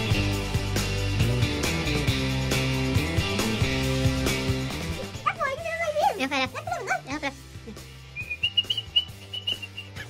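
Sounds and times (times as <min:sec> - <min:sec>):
quiet background music with bass: 0:00.0 - 0:10.0
person whistling broken notes: 0:08.1 - 0:10.0.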